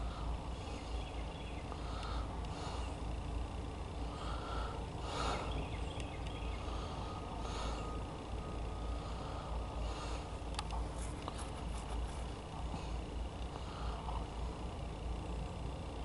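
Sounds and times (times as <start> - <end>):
diesel locomotive rumble: 0.0 - 16.0.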